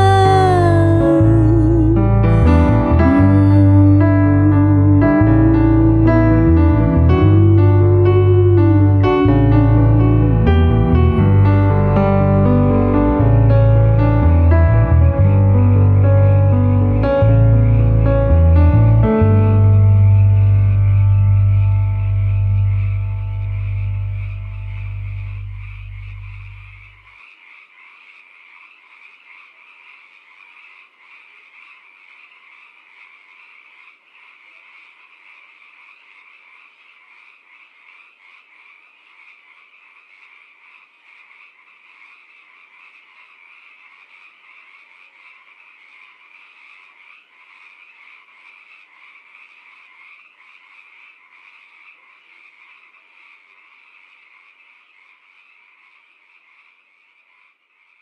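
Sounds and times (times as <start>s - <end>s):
chorus of small animals calling: 0.0s - 15.2s, 15.8s - 58.0s
low song notes: 0.0s - 26.8s.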